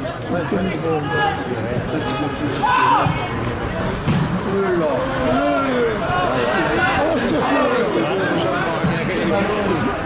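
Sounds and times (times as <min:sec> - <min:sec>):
men talking and calling out: 0:00.0 - 0:10.0.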